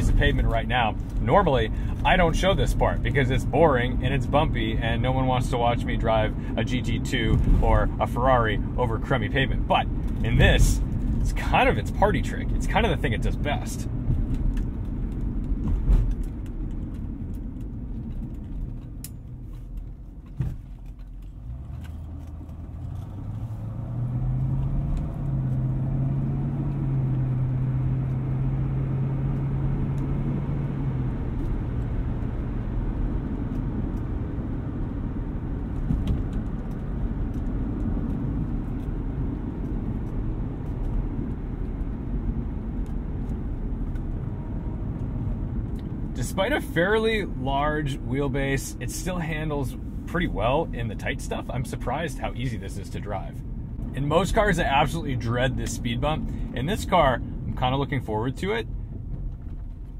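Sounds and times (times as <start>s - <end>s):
car engine accelerating: 0.0s - 59.9s
road and tyre rumble: 0.0s - 59.9s.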